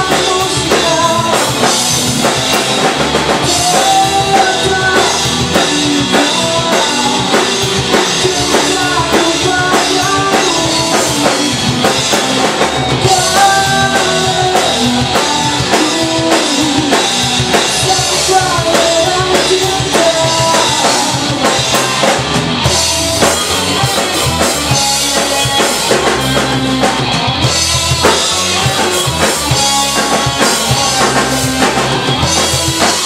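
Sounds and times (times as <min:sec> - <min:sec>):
drum kit beat: 0:00.0 - 0:33.0
rock band playing live: 0:00.0 - 0:33.0.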